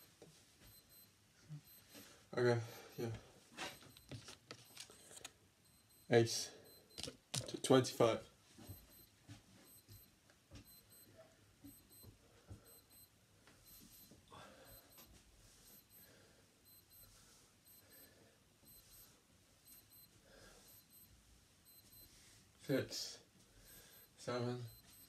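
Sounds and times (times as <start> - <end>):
man breathing: 14.3 - 18.4.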